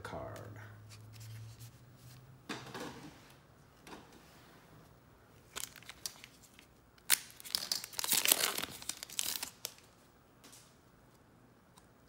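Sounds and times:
wrapper crinkling: 5.4 - 10.0
wrapper tearing: 5.5 - 10.0.

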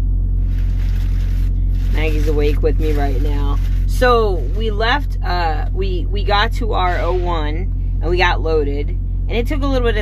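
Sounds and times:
diesel truck engine idling: 0.0 - 10.0.

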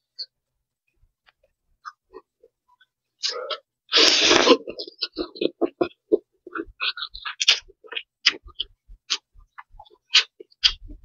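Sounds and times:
noodle slurp: 3.2 - 9.2
wet mouth clicks: 3.2 - 11.0.

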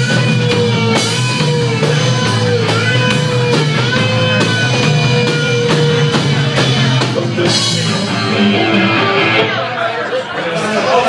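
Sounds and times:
electric guitar: 0.0 - 10.1
people talking loudly: 0.0 - 11.0.

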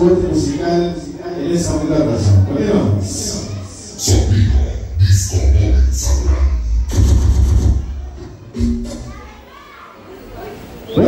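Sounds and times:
bass-heavy dance music: 4.1 - 9.2.

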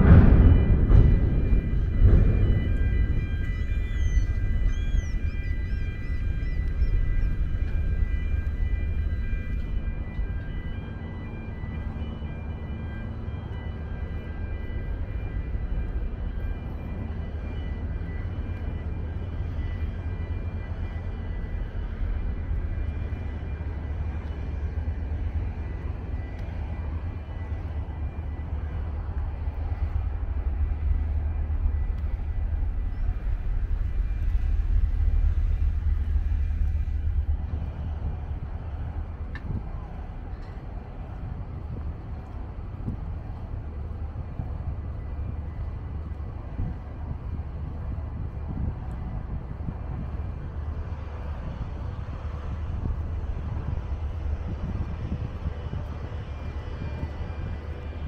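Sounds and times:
wind rumbling on microphone: 0.0 - 58.0.

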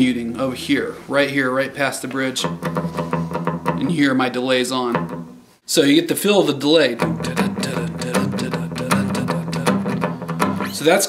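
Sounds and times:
palm-muted electric guitar lick: 7.0 - 10.8.

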